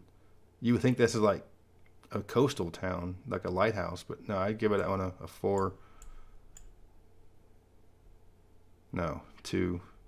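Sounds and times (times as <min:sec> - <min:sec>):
low steady hum: 0:00.0 - 0:10.0
faint computer mouse clicks: 0:05.6 - 0:06.8.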